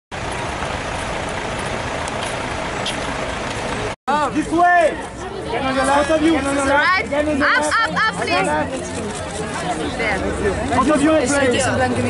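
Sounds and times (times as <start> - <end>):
low traffic rumble: 0.1 - 12.0.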